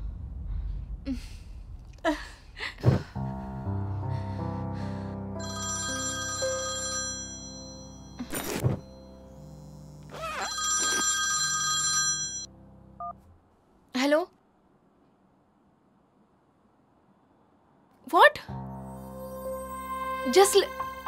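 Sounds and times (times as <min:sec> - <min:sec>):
low background music: 0:02.8 - 0:10.3, 0:18.5 - 0:21.0
mobile phone ringtone: 0:05.4 - 0:12.5.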